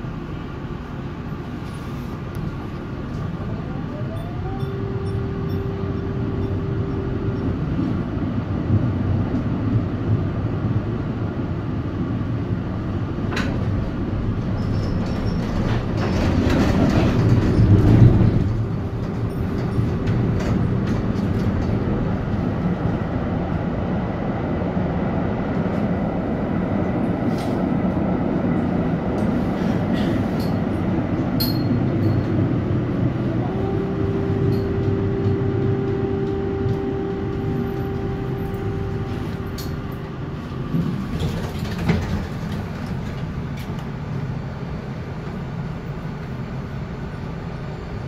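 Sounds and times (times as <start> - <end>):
tram motors and wheels rumbling: 0.0 - 48.0
steady whine: 30.5 - 41.2.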